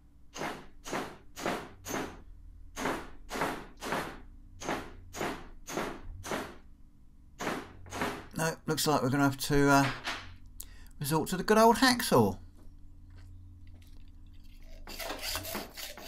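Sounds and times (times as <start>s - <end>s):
hammer striking metal: 0.4s - 2.2s.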